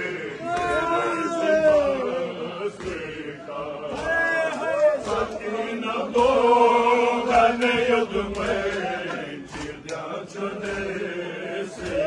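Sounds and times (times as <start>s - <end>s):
men chanting together: 0.0s - 12.0s
chest-beating slaps: 2.8s - 12.0s.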